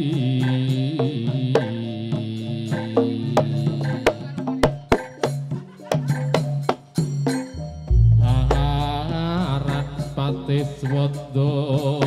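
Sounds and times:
person chanting: 0.0 - 4.5, 8.0 - 12.0
gamelan ensemble playing: 4.9 - 12.0
sharp drum strikes: 6.0 - 12.0.

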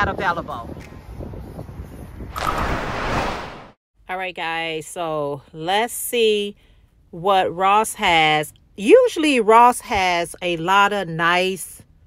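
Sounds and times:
wind rumbling on microphone: 0.0 - 3.8
loud rushing whoosh: 2.3 - 3.8.

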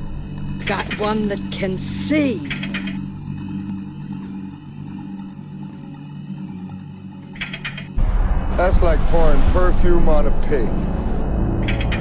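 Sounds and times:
low droning hum: 0.0 - 12.0.

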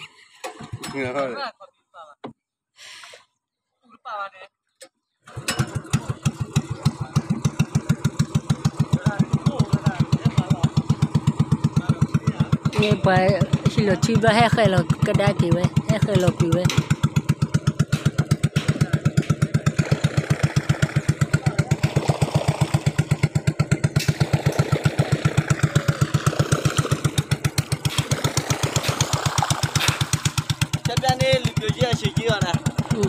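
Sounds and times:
boat engine chugging: 5.3 - 33.0.

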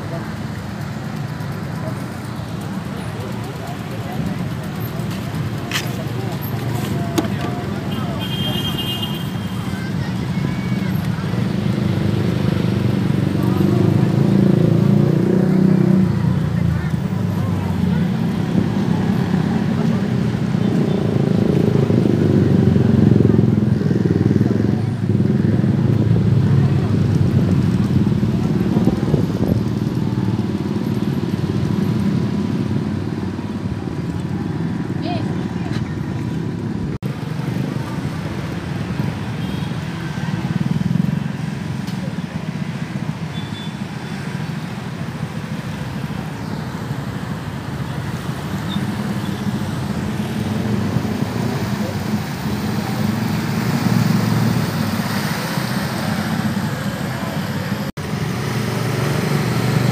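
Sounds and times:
crowd chatter: 0.0 - 59.9.

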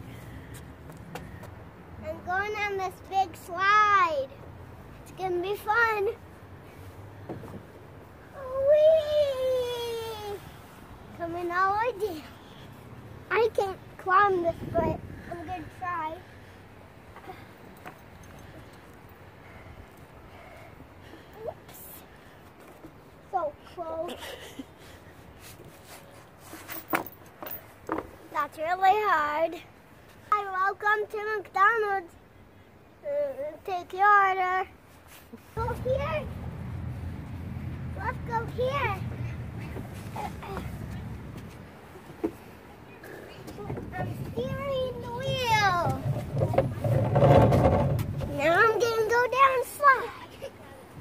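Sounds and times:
child's effort sounds: 8.2 - 10.8, 20.4 - 22.1, 37.8 - 41.1.

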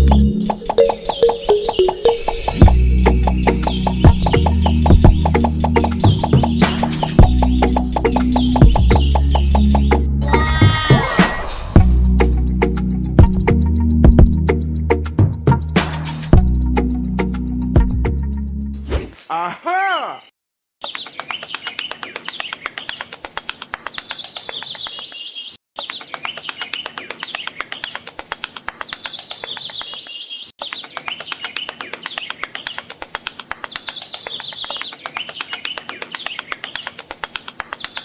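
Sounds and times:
dense bird twittering: 0.0 - 10.5, 20.0 - 38.0
birds chirping: 0.0 - 10.9, 19.1 - 38.0.

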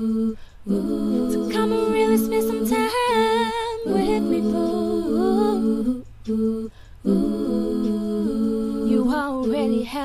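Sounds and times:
lead voice singing with vibrato: 0.0 - 10.0
r and b song with vocal harmonies: 0.0 - 10.0.

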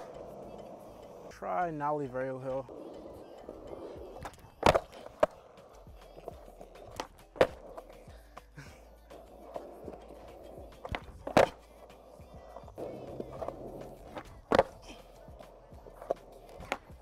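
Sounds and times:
skateboard rolling on concrete: 0.0 - 17.0
skateboard wooden clacks: 3.4 - 8.0, 9.2 - 17.0.

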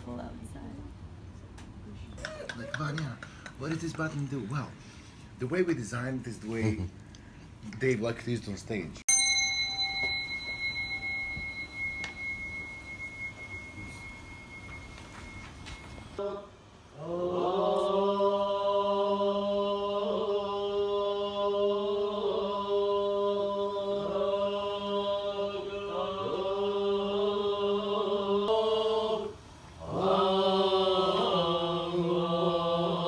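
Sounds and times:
bell ringing: 9.1 - 16.2
low chanting voices: 16.1 - 33.0.

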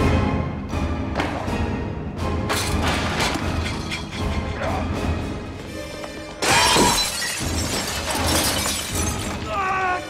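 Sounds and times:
orchestral film score: 0.0 - 7.6, 9.0 - 10.0
glass shattering: 2.5 - 4.5, 6.4 - 9.7.

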